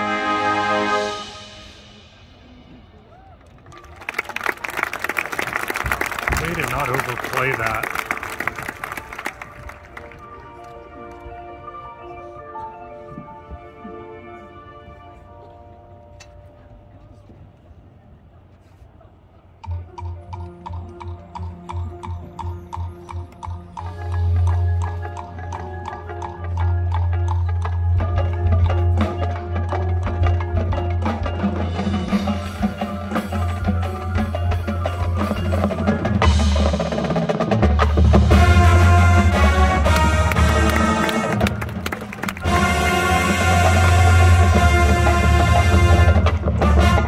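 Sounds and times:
marching band music: 0.0 - 2.9, 3.8 - 16.5, 19.7 - 47.0
percussion strikes: 19.6 - 47.0.

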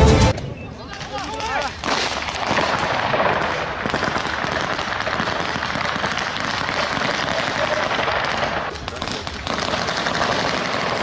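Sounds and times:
rapid gunshots: 1.8 - 11.0.

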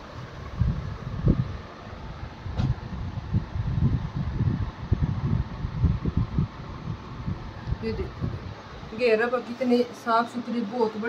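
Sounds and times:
microphone handling noise: 2.5 - 8.6.

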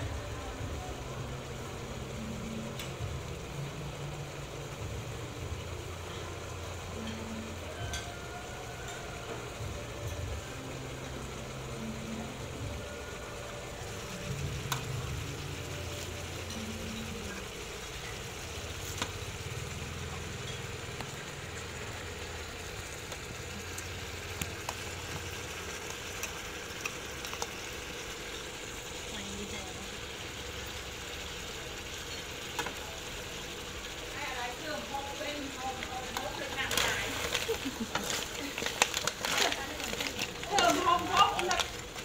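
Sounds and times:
food sizzling in a wok: 0.0 - 42.0
utensils clinking on wok: 20.0 - 21.3.

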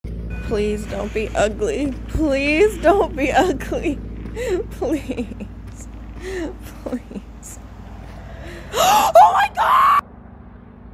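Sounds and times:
person screaming excitedly: 8.7 - 10.0.

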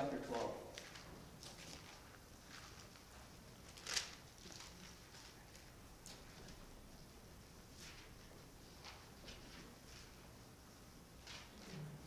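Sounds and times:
thin pages being turned: 0.3 - 6.5.

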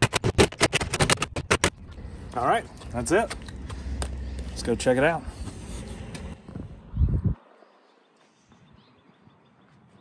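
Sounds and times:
wind buffeting microphone: 6.3 - 7.4.

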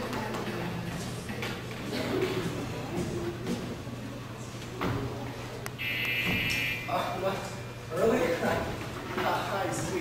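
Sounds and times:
electric buzzer: 5.8 - 6.9.

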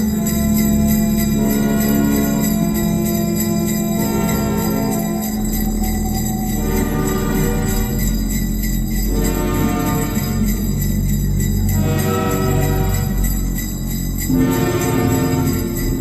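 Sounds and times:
fast ticking pulse: 0.0 - 16.0.

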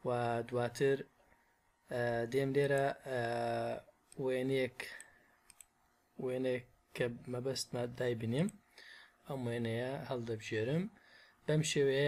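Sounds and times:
computer mouse clicks: 4.9 - 5.8.

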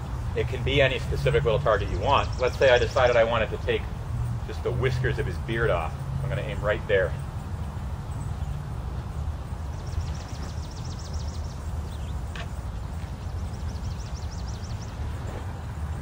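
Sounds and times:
bird trilling: 9.5 - 15.6.

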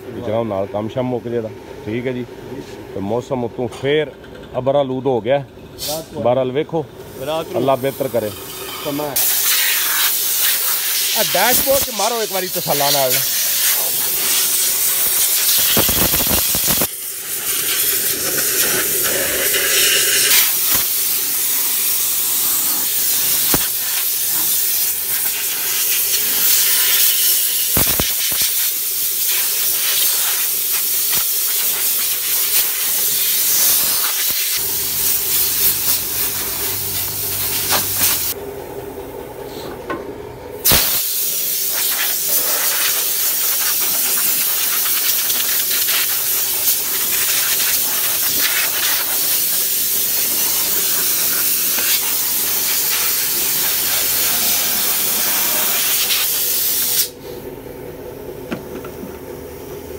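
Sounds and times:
air blow gun hissing: 7.1 - 38.4, 40.6 - 57.4.

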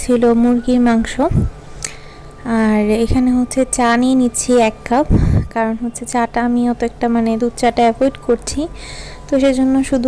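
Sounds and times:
woman talking: 0.0 - 1.5, 2.4 - 10.0.

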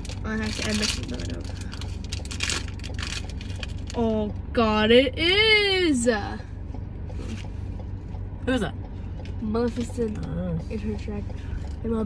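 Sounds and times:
plastic packaging crackling: 0.0 - 4.0.

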